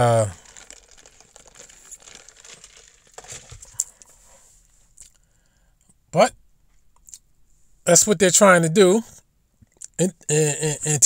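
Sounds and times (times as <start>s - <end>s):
faint rustling: 0.0s - 5.0s.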